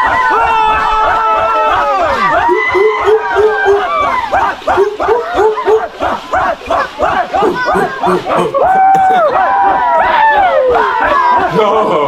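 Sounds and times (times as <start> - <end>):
men chanting rhythmic shouts: 2.1 - 11.6.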